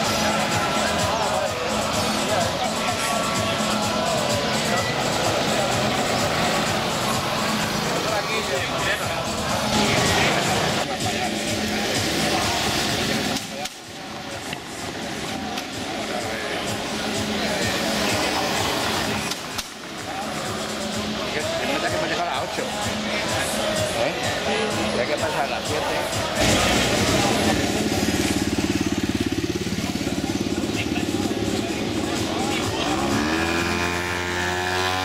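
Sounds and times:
motor traffic: 0:00.0 - 0:35.0
music playing from bars: 0:00.0 - 0:35.0
people talking: 0:00.0 - 0:35.0.

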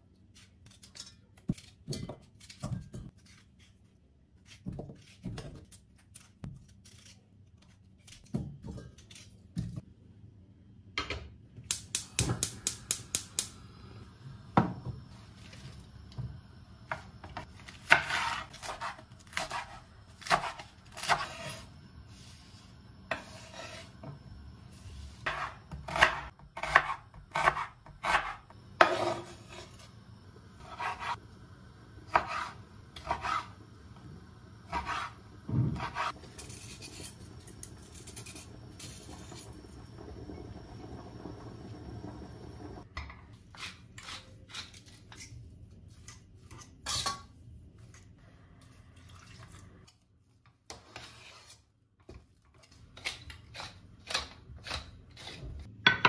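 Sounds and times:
knife slicing onion on wooden board: 0:16.9 - 0:22.3, 0:23.1 - 0:24.2, 0:25.2 - 0:30.0, 0:30.6 - 0:31.2, 0:32.0 - 0:33.6, 0:34.6 - 0:39.1, 0:43.5 - 0:45.3, 0:52.6 - 0:55.7
peeler scraping carrot: 0:52.6 - 0:55.7.

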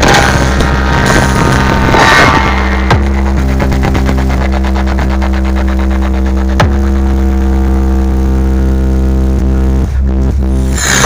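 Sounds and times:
deep bass drone from speakers: 0:00.0 - 0:11.0.

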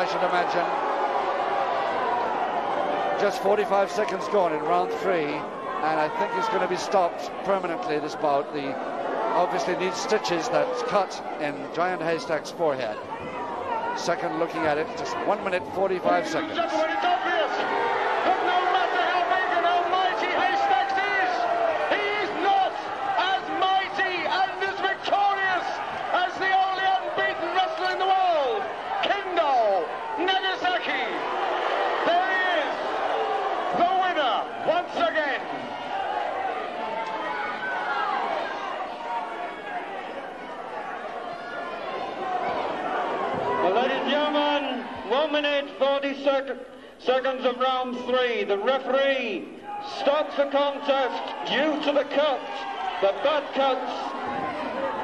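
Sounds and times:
crowd shouting: 0:00.0 - 0:45.8, 0:48.6 - 0:55.0
scattered claps: 0:27.6 - 0:28.2.

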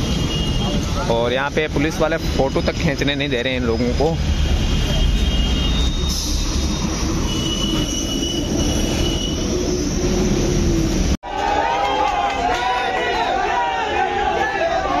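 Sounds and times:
road traffic: 0:00.0 - 0:15.0
high squealing tones: 0:05.2 - 0:10.8.

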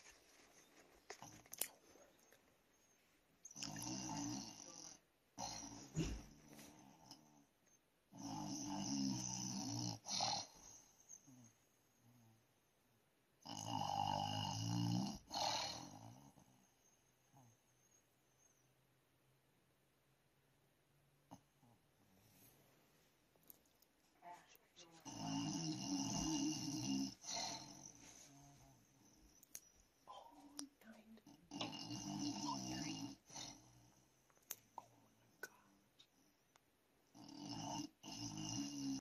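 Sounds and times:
quiet breathing: 0:00.0 - 0:07.8, 0:21.3 - 0:23.2, 0:24.1 - 0:36.6
person snoring: 0:03.5 - 0:07.3, 0:08.2 - 0:11.5, 0:13.4 - 0:16.4, 0:25.0 - 0:28.8, 0:31.5 - 0:33.8, 0:37.1 - 0:39.0.

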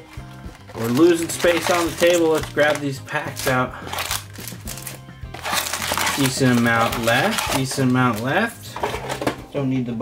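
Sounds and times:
foil card packs crinkling: 0:00.0 - 0:09.3
background music with beat: 0:00.0 - 0:10.0.

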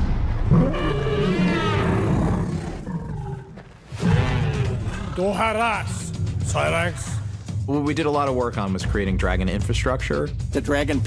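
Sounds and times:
dragon roaring: 0:00.5 - 0:05.4
music: 0:04.0 - 0:11.0.

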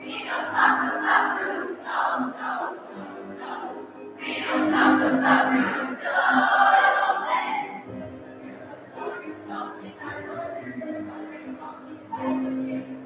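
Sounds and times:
choir singing: 0:00.0 - 0:13.0.

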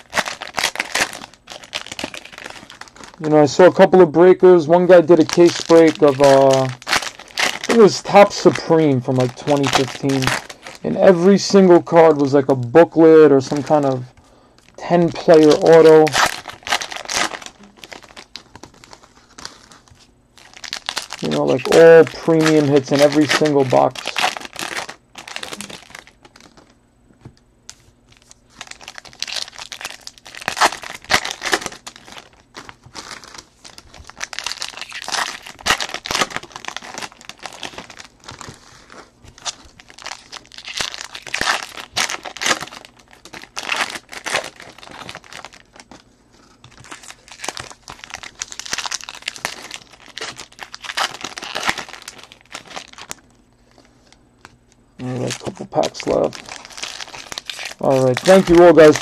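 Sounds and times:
foil wrappers crinkling and tearing: 0:00.0 - 0:26.8, 0:27.7 - 0:59.0.

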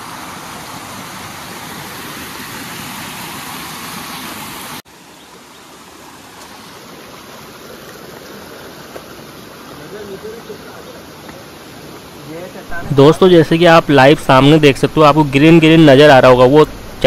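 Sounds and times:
stream rushing over boulders: 0:00.0 - 0:17.0.

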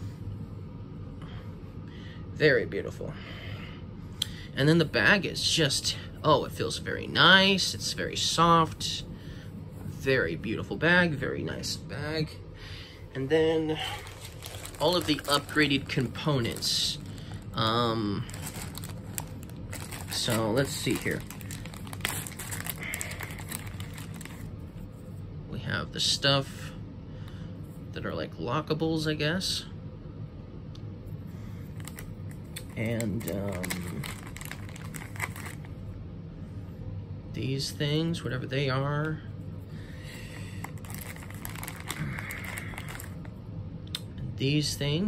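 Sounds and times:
plastic bag crinkling: 0:13.6 - 0:24.5, 0:31.7 - 0:35.7, 0:40.6 - 0:43.3
hands rustling game cards: 0:13.7 - 0:24.5, 0:31.7 - 0:35.7, 0:40.6 - 0:43.2.

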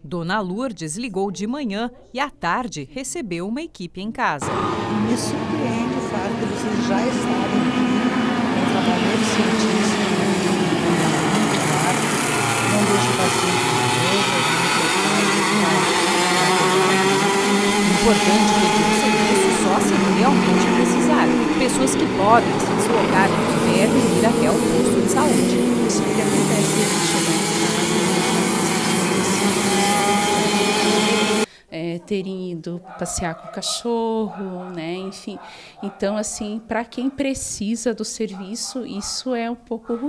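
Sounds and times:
woman's voice: 0:00.0 - 0:04.5, 0:08.6 - 0:10.3, 0:11.6 - 0:40.0
motor running: 0:04.4 - 0:31.5.

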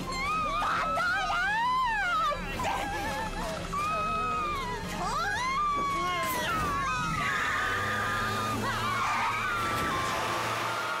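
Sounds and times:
tyres squealing: 0:00.0 - 0:11.0
high-pitched screaming: 0:05.1 - 0:11.0.

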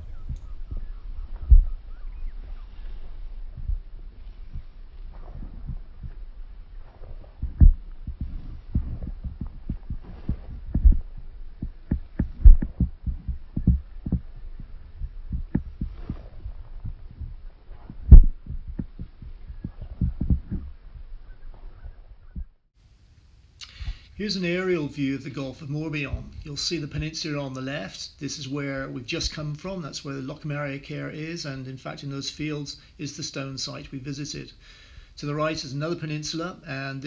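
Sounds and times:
wind buffeting microphone: 0:00.0 - 0:22.6.

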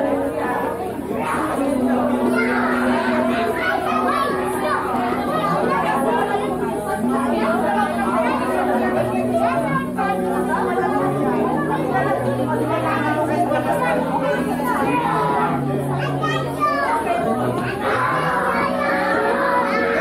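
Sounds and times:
many people talking: 0:00.0 - 0:20.0.

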